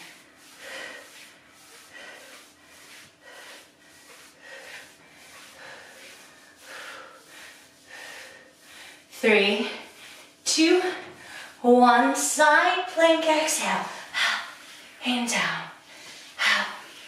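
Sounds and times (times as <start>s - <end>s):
woman breathing hard: 0.0s - 11.6s.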